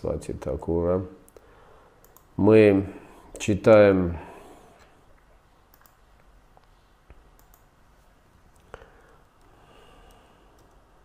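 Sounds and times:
faint clicks: 1.2 - 2.3, 4.8 - 7.7, 8.5 - 10.9.

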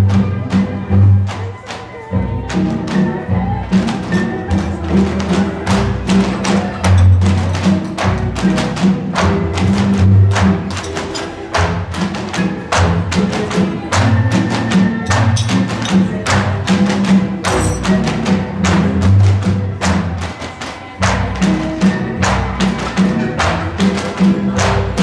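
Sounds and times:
dance music: 0.0 - 25.0
bamboo poles clacking: 4.9 - 19.4.

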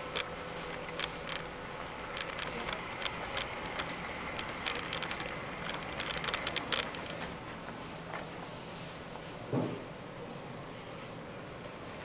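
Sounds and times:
electric wheelchair motor hum: 0.0 - 8.2
wheelchair clicks and rattles: 0.0 - 8.3.

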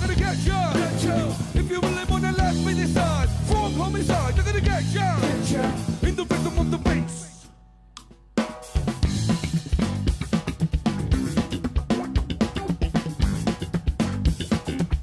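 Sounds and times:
bass guitar: 0.0 - 15.0
drum kit playing: 0.0 - 15.0.

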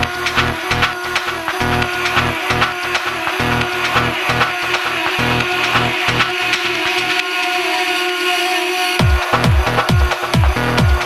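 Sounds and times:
hissing noise wash: 0.0 - 11.0.

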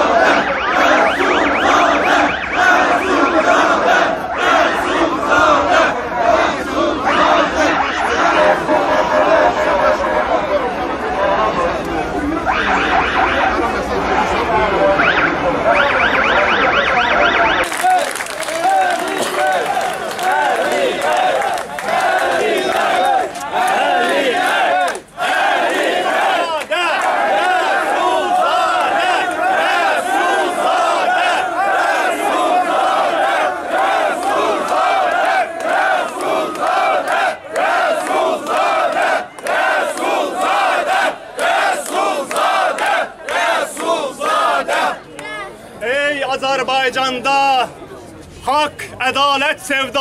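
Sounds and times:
crowd shouting: 0.0 - 45.6.

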